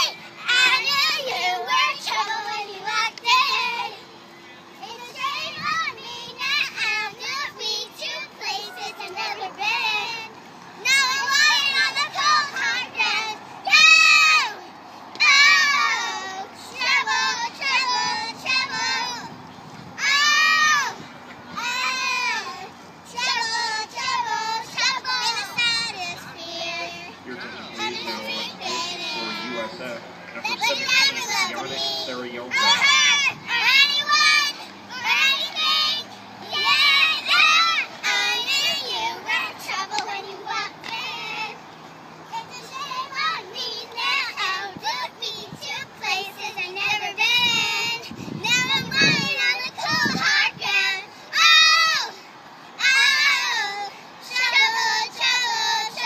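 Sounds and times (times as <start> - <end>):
girls singing: 0.0 - 56.0.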